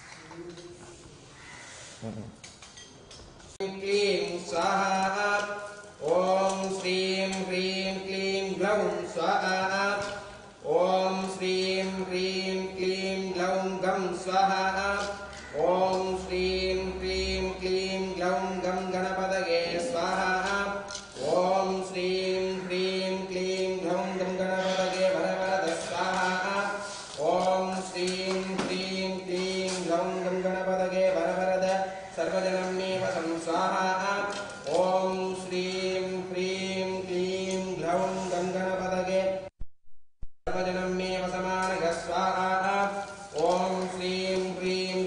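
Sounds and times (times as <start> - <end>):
priests chanting: 3.6 - 39.1.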